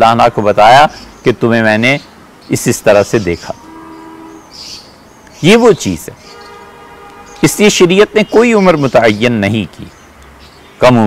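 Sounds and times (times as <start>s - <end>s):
man speaking: 0.0s - 3.6s, 5.4s - 6.2s, 7.4s - 9.9s.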